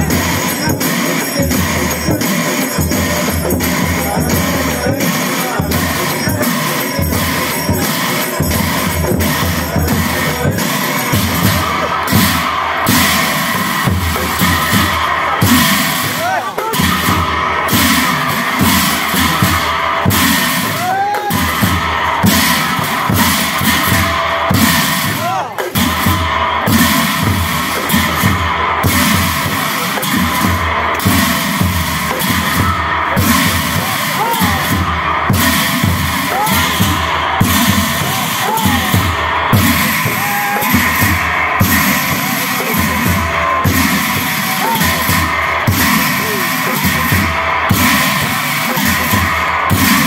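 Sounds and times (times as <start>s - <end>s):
brass hand cymbals clashing: 0.0s - 50.0s
large drums beaten fast: 0.0s - 50.0s
voices: 0.0s - 50.0s.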